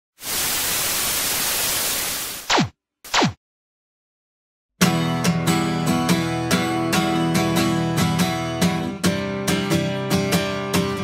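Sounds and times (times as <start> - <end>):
tv static hiss: 0.2 - 2.5.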